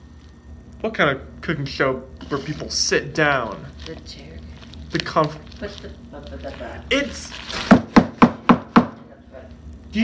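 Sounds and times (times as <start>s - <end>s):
bag of hard sugar knocking countertop: 7.5s - 9.0s.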